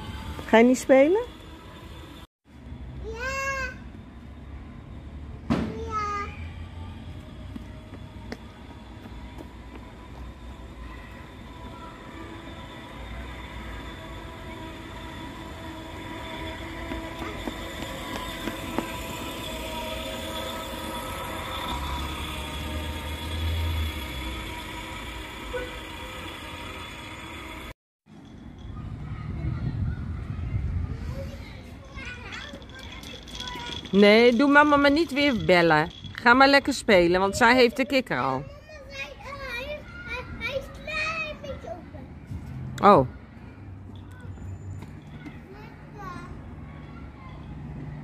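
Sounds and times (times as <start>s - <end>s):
mechanical drone: 6.4s - 29.2s.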